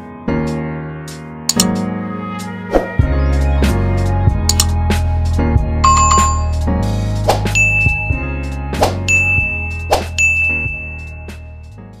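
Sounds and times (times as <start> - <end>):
low music bed: 0.0 - 12.0
button click: 1.5 - 1.7, 4.4 - 4.7
bright bell-like ding: 5.8 - 6.5, 7.6 - 8.2, 9.1 - 11.5.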